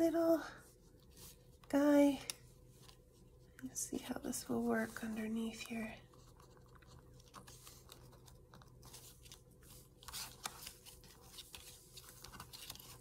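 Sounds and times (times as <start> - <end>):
paper rustling: 4.8 - 13.0.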